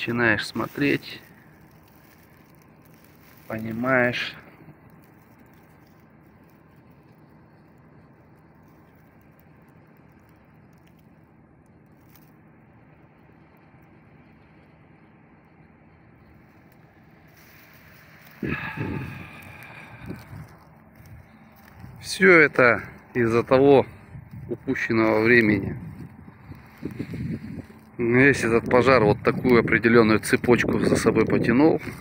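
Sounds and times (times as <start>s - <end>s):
faint outdoor background noise: 0.0s - 32.0s.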